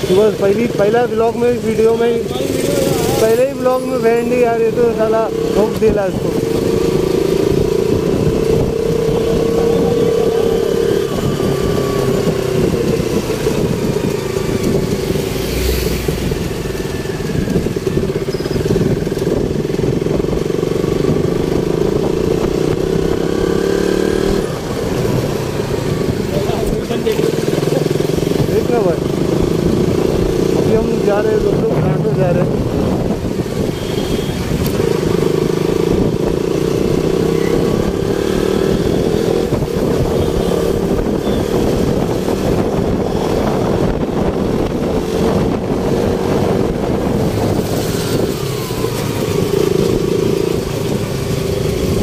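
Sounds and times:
motorcycle engine running: 0.0s - 52.0s.

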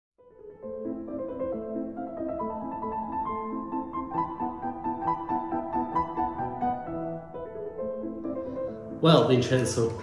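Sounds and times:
piano music: 0.2s - 10.0s.

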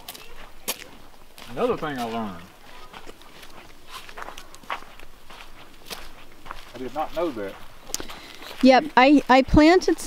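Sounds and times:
footsteps on sandy dirt road: 0.0s - 10.0s.

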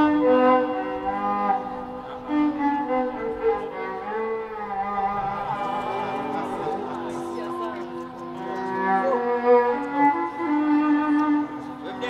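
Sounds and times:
solo violin melody: 0.0s - 12.0s.

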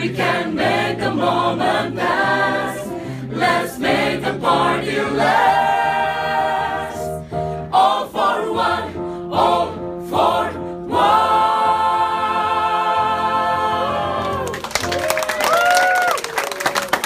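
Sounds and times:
mixed choir singing pop song: 0.0s - 14.5s.

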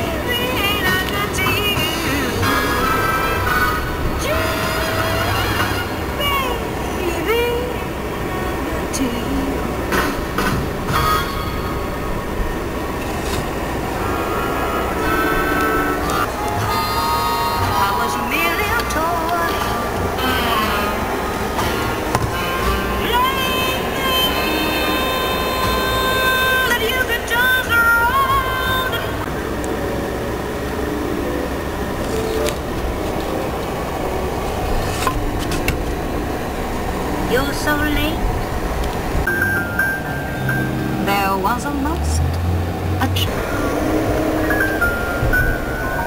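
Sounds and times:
car road and engine rumble: 0.0s - 46.0s.

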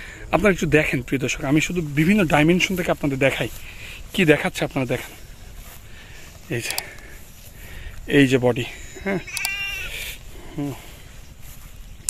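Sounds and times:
man speaking: 0.3s - 5.2s, 6.4s - 7.0s, 8.1s - 10.9s
sheep bleating: 8.7s - 10.2s.

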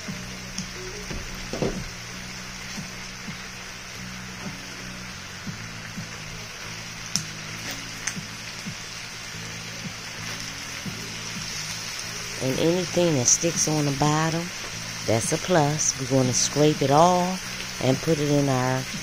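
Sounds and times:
meat and onions sizzling in skillet: 0.0s - 19.0s
soft background music: 0.0s - 19.0s.

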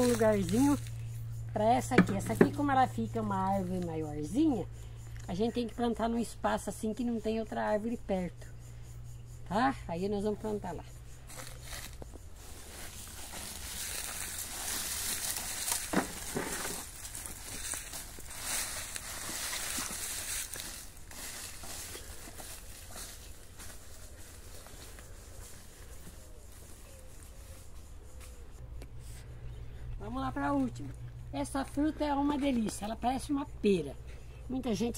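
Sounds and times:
footsteps crunching dry leaves: 0.0s - 1.0s, 11.3s - 27.8s.

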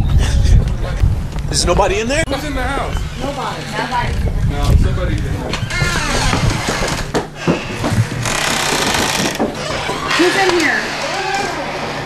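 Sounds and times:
footsteps: 3.0s - 11.8s.

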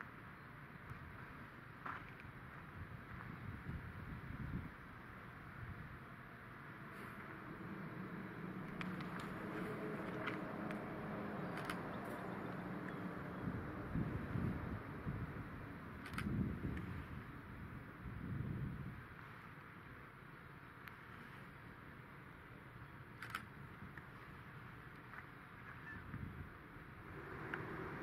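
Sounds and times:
distant diesel locomotive engines: 0.0s - 28.0s
low rumbles: 6.5s - 17.2s
sharp clicks: 11.5s - 13.0s, 16.0s - 16.4s, 23.2s - 24.1s.

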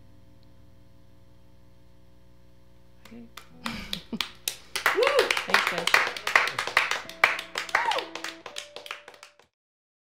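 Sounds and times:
group clapping: 3.0s - 9.5s
short vocal cries: 7.7s - 8.2s.

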